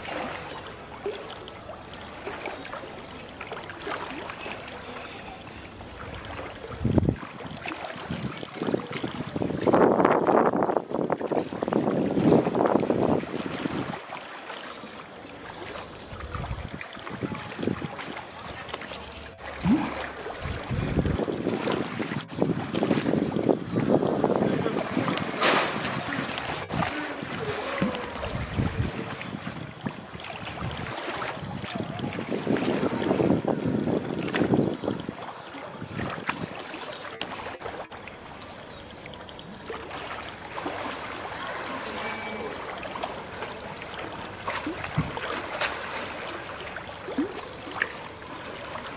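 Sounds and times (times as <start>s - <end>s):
pool water splashing and sloshing: 0.0s - 48.9s.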